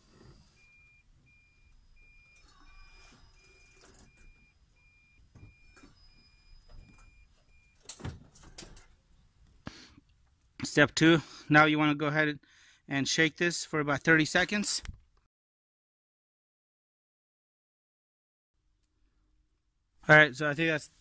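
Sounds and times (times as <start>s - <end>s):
reverse warning beeps: 0.2s - 7.9s.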